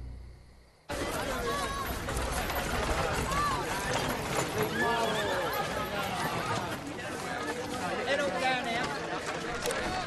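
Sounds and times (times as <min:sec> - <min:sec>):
hooves clip-clopping: 0:00.9 - 0:10.0
people's voices: 0:00.9 - 0:10.0.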